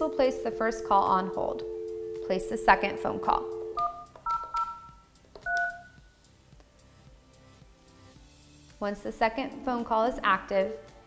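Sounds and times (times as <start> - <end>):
phone dialing tones: 0.0 - 6.0.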